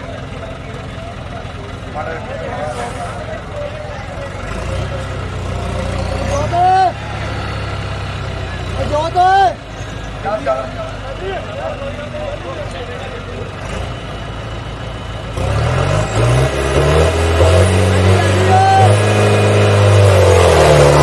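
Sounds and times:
crowd chatter: 0.0s - 15.6s
tractor engine rumbling: 0.0s - 21.0s
loud shouts: 6.3s - 7.2s, 18.1s - 19.2s.

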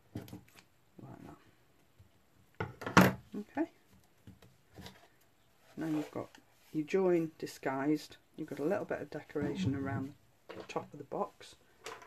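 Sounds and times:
person saying a word: 9.4s - 10.1s.

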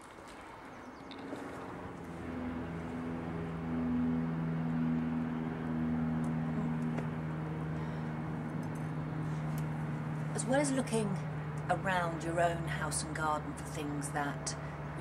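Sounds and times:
motor humming: 1.1s - 12.1s.

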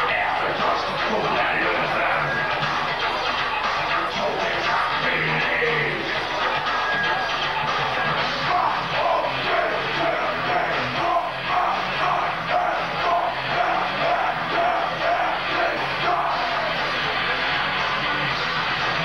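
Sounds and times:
metal band playing live: 0.0s - 19.0s.

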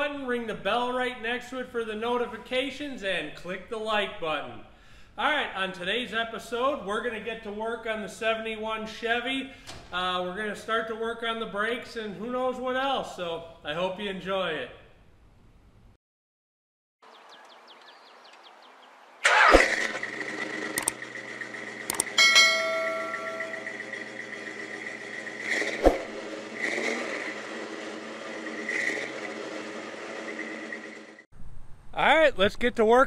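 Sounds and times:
car engine starting and running: 19.2s - 31.3s
sharp clicks: 20.6s - 21.0s, 21.8s - 22.2s
short ringing tone: 22.0s - 24.2s.

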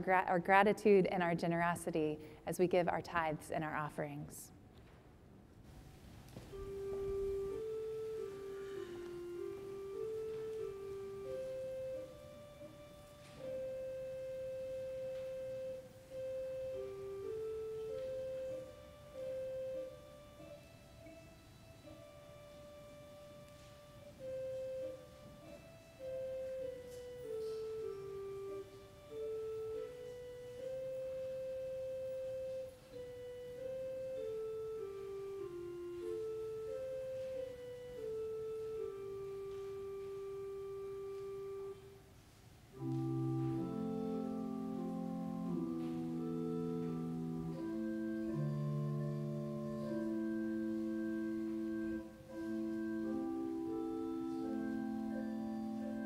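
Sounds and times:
slow instrumental melody: 6.3s - 56.0s.

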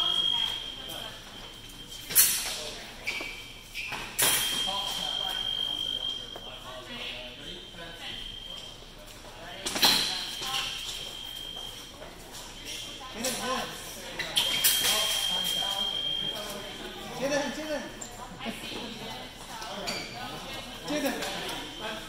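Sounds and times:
faint murmuring voices: 0.0s - 22.0s.

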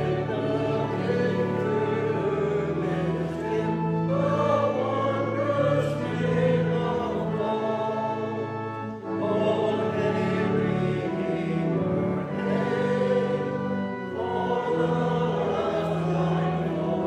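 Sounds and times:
choir singing a slow hymn: 0.0s - 17.0s.

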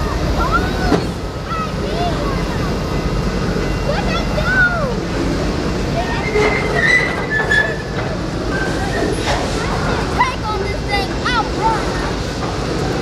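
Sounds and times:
train wheels rumbling on rail: 0.0s - 13.0s
high wheel squeals: 5.9s - 9.4s.

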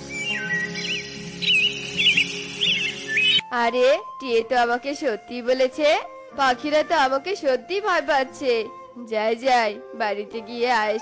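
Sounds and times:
background music sustained chords: 0.0s - 11.0s.

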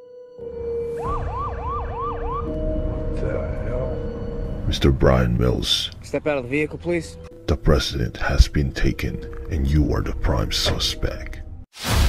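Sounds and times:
police siren yelp: 0.9s - 4.0s.

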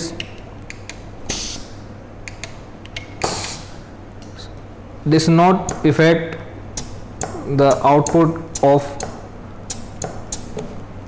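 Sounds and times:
compressed air hissing clicks: 0.2s - 4.6s, 5.6s - 10.7s.

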